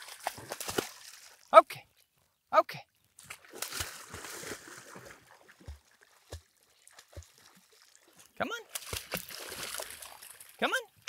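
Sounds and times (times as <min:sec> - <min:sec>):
dog splashing through water: 0:00.0 - 0:01.5, 0:03.2 - 0:10.6.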